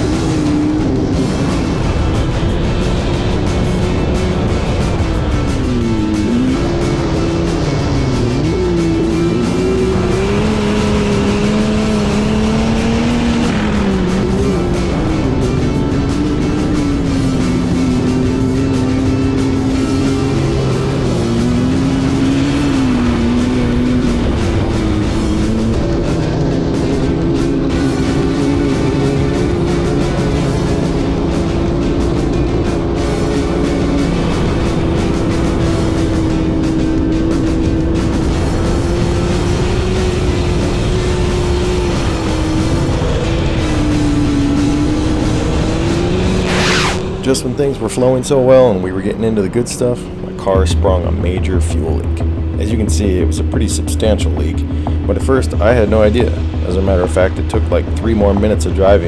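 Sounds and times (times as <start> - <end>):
background music: 0.0 - 59.0
vehicle engine revving: 0.0 - 59.0.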